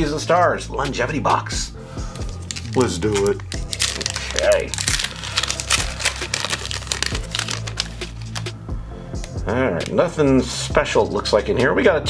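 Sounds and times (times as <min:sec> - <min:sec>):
foil wrapper crinkling: 0:02.1 - 0:08.6.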